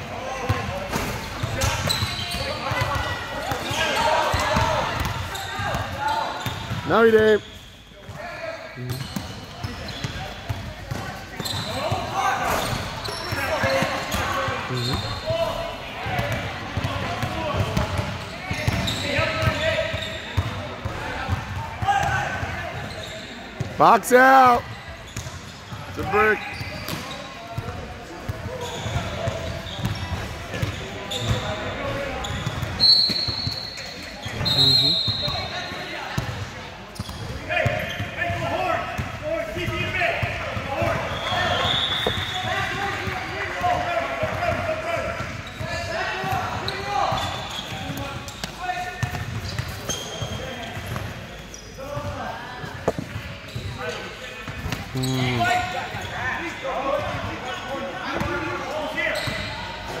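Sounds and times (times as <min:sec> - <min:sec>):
voices of players and onlookers: 0:00.0 - 1:00.0.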